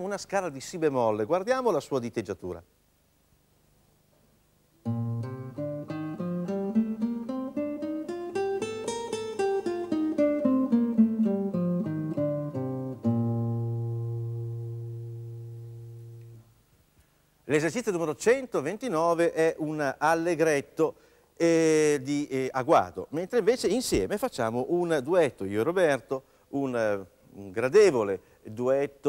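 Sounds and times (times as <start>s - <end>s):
classical guitar playing a scale: 4.8s - 16.4s.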